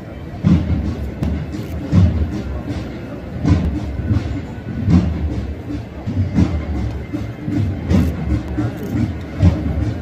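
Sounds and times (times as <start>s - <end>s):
deep drum beats: 0.0s - 10.0s.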